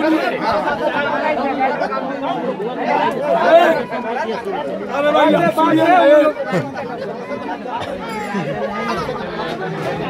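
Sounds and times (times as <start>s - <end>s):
crowd of men chattering: 0.0s - 10.0s.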